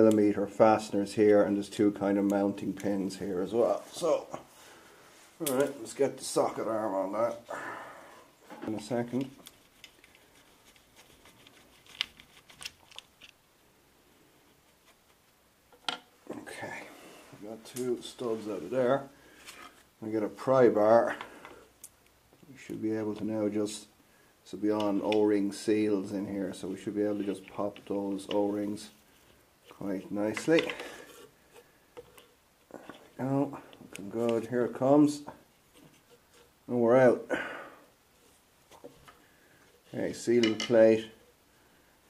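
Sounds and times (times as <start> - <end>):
sticker tearing crackles: 9.2 - 13.4.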